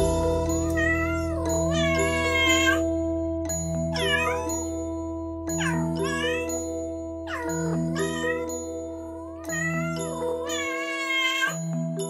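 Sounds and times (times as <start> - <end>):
cat meowing: 0.8 - 2.8, 4.0 - 4.5, 10.5 - 11.6.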